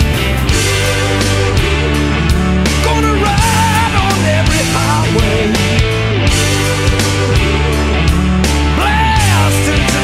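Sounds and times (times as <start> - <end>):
high lead line with vibrato: 0.0 - 10.0
rock band playing: 0.0 - 10.0.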